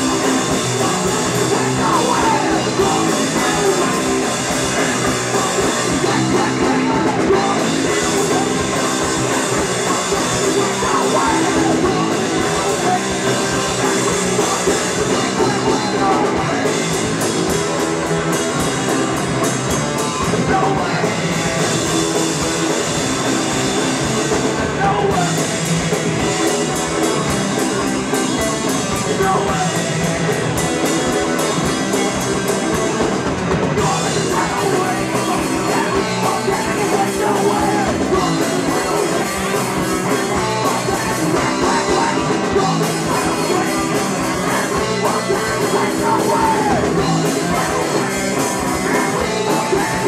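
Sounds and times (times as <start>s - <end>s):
live rock band playing: 0.0s - 50.0s.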